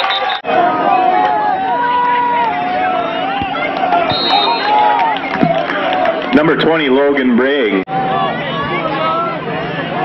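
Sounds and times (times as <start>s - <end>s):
crowd yelling and cheering: 0.0s - 10.0s.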